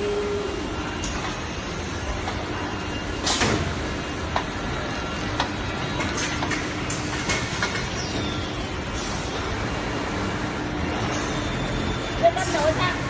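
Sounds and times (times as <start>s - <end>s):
falling whine: 0.0s - 1.1s
machine and conveyor noise: 0.0s - 13.0s.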